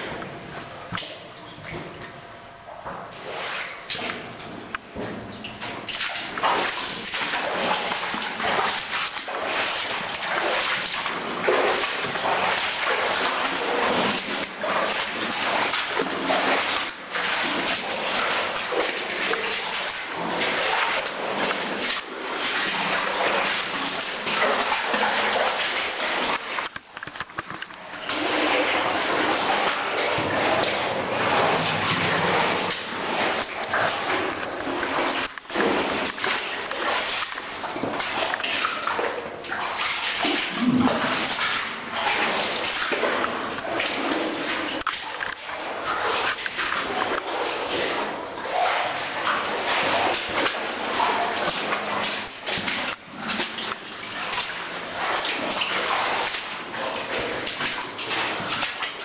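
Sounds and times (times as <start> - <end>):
feet splashing through shallow water: 3.1 - 59.0.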